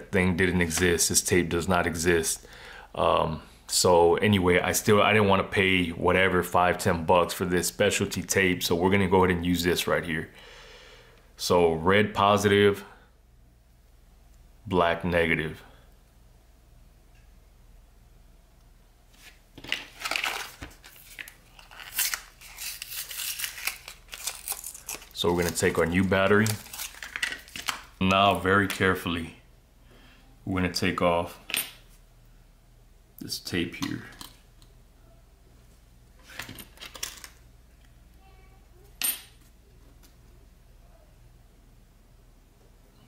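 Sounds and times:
plastic blister pack crinkling: 19.2s - 28.0s.

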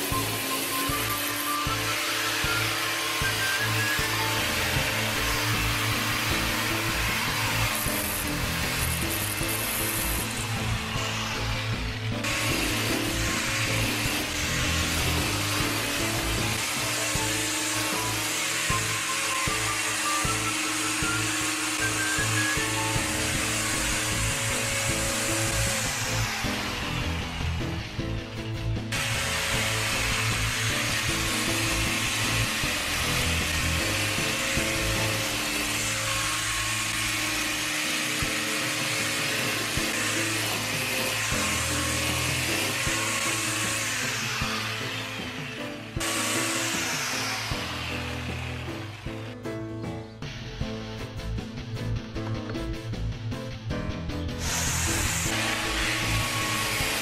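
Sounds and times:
angle grinder cutting grass: 0.0s - 49.4s, 54.3s - 57.0s
background music: 0.0s - 57.0s.

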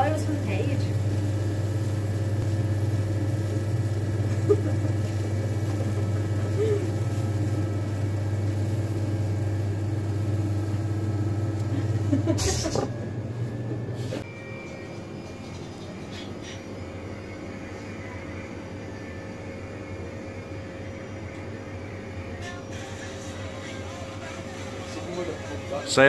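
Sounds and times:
electric sausage filler humming: 0.0s - 26.0s.

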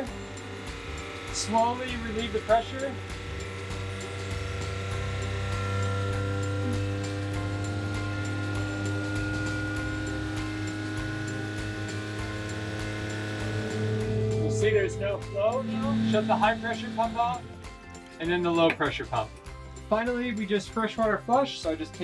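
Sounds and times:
pumps humming: 0.0s - 19.8s
background music: 0.0s - 22.0s.

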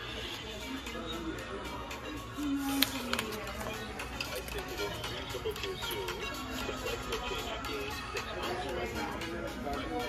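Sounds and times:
store background music: 0.0s - 10.0s.

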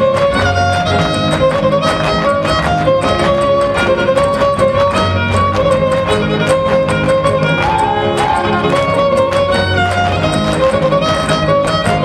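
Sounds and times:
strummed rhythmic accompaniment: 0.0s - 12.0s
violin melody: 0.0s - 12.0s.

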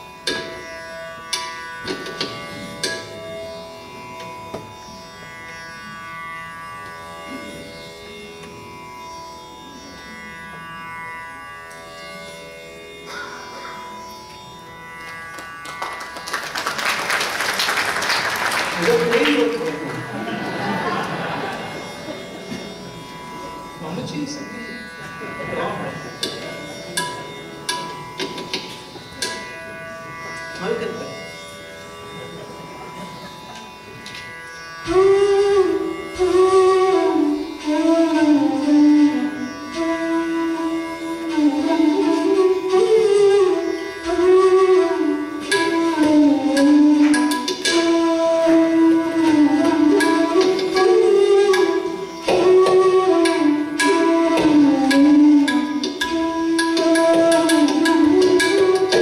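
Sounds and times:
tanpura drone: 0.0s - 59.0s
audience applause: 15.0s - 22.4s.

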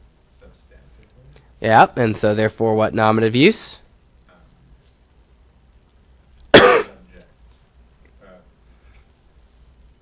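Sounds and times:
person coughing: 6.5s - 7.0s.

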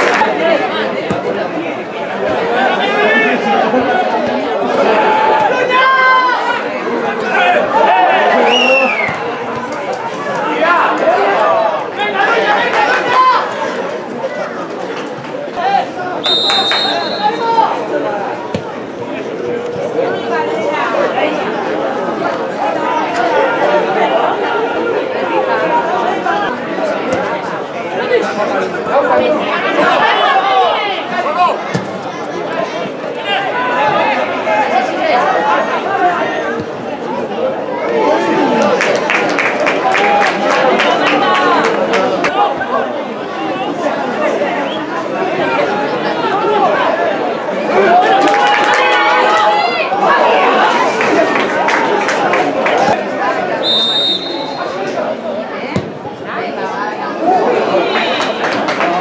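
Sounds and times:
spectators chattering: 0.0s - 59.0s
long held call: 16.2s - 17.5s.

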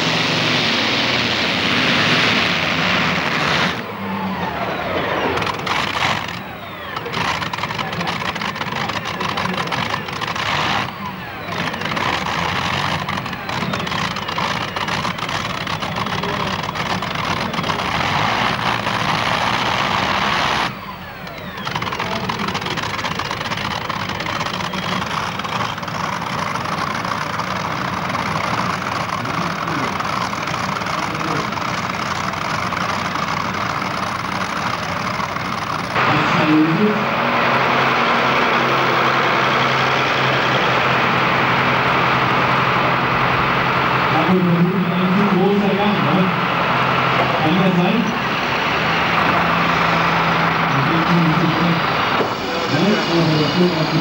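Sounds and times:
engine running at lower revs: 0.0s - 54.0s
tractor engine at full throttle: 0.0s - 54.0s.

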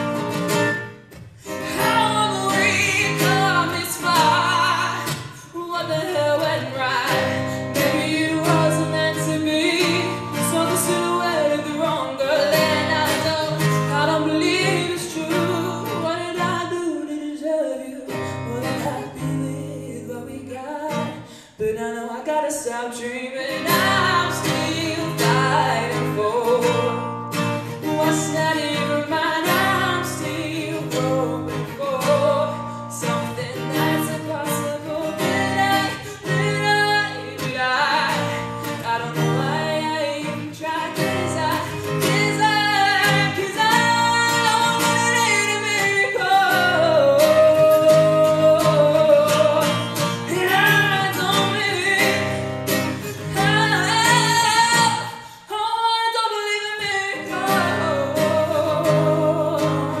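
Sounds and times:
acoustic guitar chords: 0.0s - 60.0s
woman singing: 0.0s - 60.0s.

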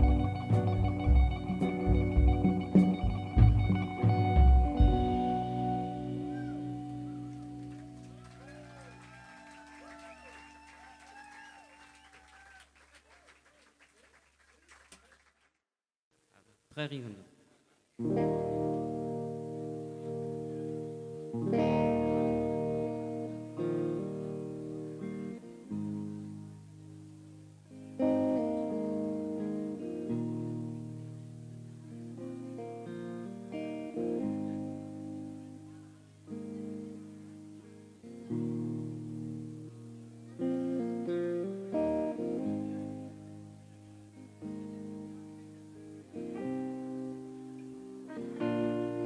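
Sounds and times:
electric guitar chord ringing: 0.0s - 8.1s, 18.0s - 49.0s.

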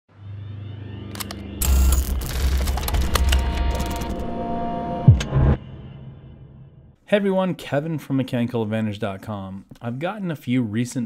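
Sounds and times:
faint rising tone: 0.1s - 7.0s
low drone: 0.1s - 7.0s.

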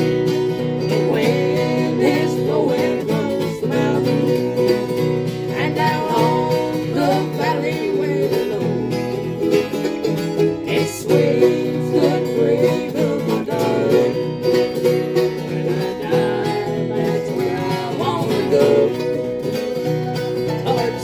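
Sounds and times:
acoustic guitar: 0.0s - 21.0s
mandolin: 0.0s - 21.0s
two voices singing: 0.0s - 21.0s.

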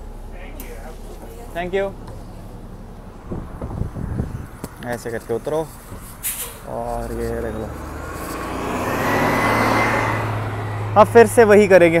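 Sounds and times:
bus engine pulling away: 0.0s - 12.0s.

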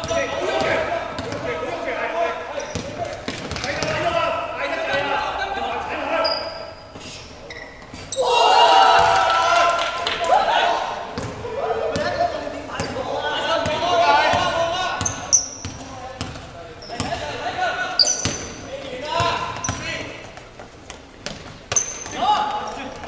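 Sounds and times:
players calling out: 0.0s - 20.4s
basketball bouncing on hardwood: 15.6s - 17.2s.

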